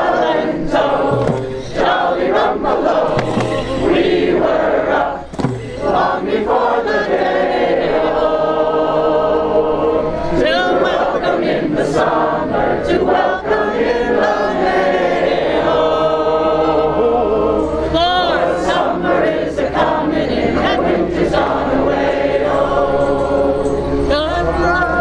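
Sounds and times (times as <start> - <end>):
group of voices singing: 0.0 - 25.0.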